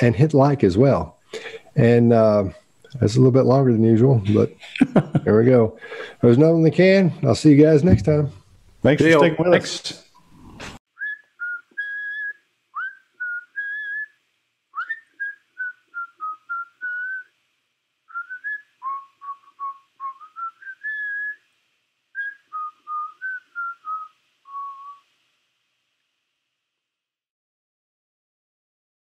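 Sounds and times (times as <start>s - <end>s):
person whistling a tune: 11.0s - 14.1s, 14.8s - 17.3s, 18.1s - 21.4s, 22.2s - 25.0s.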